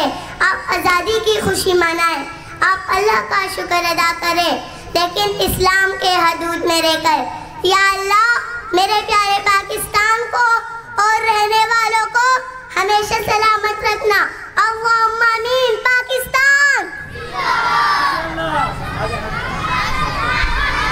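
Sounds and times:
children cheering and shouting: 16.4 - 20.9.

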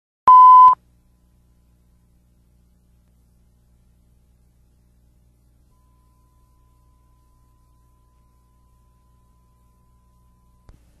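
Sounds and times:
electronic beep: 0.3 - 0.8.

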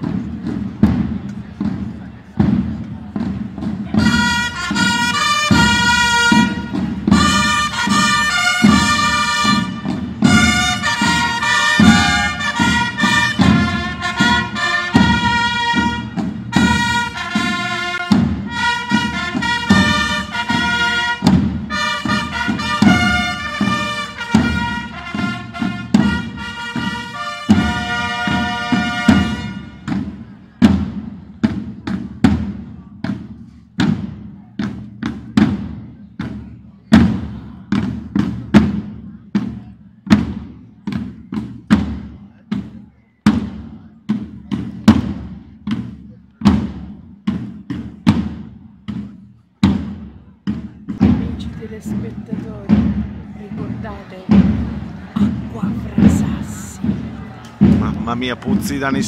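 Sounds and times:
marching drums: 0.0 - 59.0
trumpets playing fanfare: 4.0 - 30.0.

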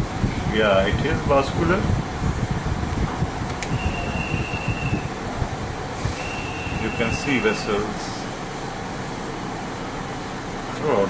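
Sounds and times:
machine hum with rumble: 0.0 - 11.0
thin high whine: 3.7 - 5.3, 6.0 - 8.3.

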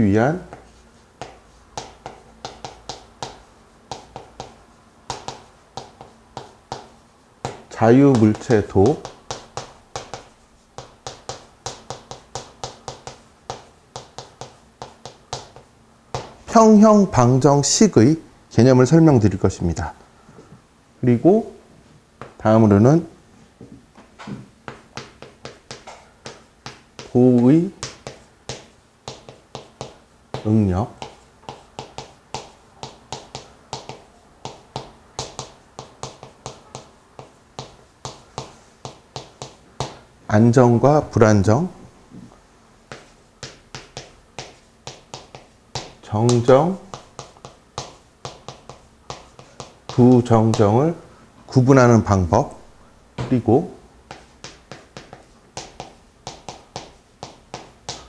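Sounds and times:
chalk tapping and scraping on board: 0.4 - 16.5, 24.0 - 40.1, 42.0 - 51.1, 54.0 - 58.0.

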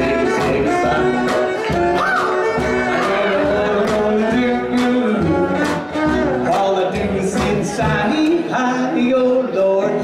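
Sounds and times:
guitar: 0.0 - 10.0
person singing: 0.0 - 10.0
upright bass: 0.0 - 10.0
western swing band playing: 0.0 - 10.0.

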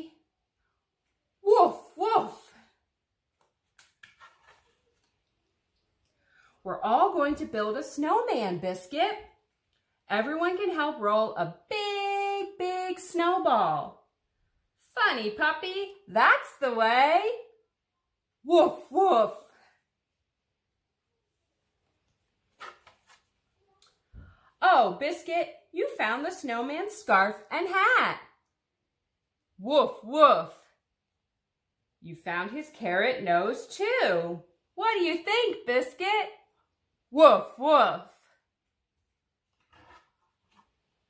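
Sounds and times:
board book page turning: 3.3 - 5.4, 22.0 - 23.6, 39.4 - 41.0.

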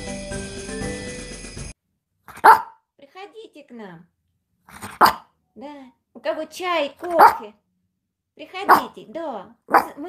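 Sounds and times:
background music: 0.0 - 1.8
small dog barking: 2.3 - 2.8, 4.7 - 5.3, 7.0 - 7.5, 8.7 - 8.9, 9.7 - 10.0.

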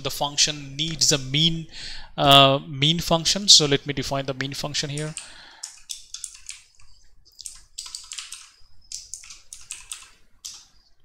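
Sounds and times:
computer keyboard typing: 4.9 - 10.7.

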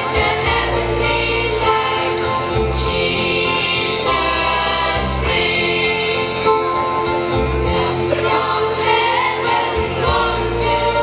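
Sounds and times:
children's choir singing: 0.0 - 6.6, 7.6 - 11.0.

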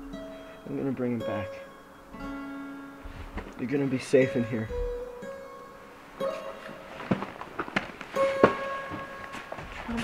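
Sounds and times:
slow plucked guitar notes: 0.0 - 7.1.

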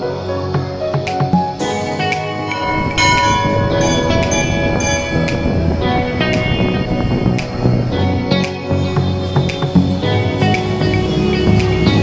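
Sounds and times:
music: 0.0 - 12.0
bells ringing: 1.8 - 9.5.

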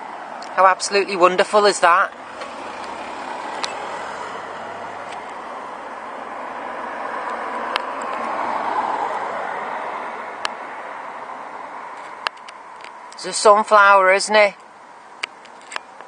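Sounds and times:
car passing on road: 0.0 - 16.0.

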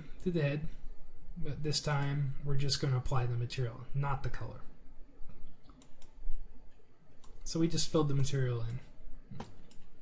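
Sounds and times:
faint low hum: 0.0 - 10.0
computer mouse clicks: 5.3 - 7.5, 8.6 - 10.0.

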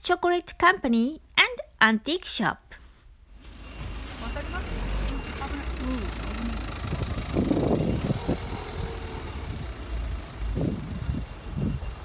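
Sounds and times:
traffic rumble: 3.2 - 12.0.

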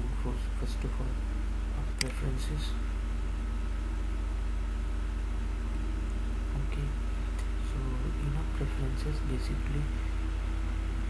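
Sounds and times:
constant hiss: 0.0 - 11.0
low electrical hum: 0.0 - 11.0.

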